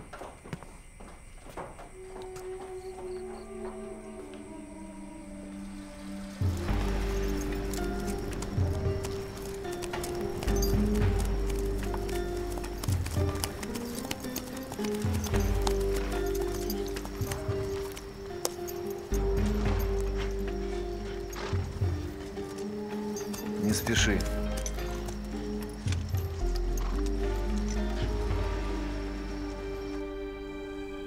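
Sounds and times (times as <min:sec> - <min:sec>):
horse hooves clopping: 0:00.0 - 0:31.0
film score with deep drone: 0:01.6 - 0:31.0.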